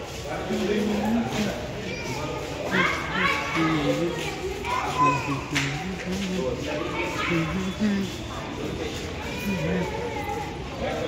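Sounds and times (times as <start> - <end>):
passers-by talking: 0.0 - 11.0
children calling out: 1.7 - 6.0, 9.2 - 10.9.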